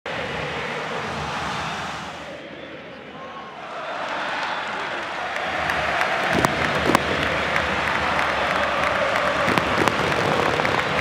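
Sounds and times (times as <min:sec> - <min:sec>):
stadium crowd voices: 0:00.1 - 0:11.0.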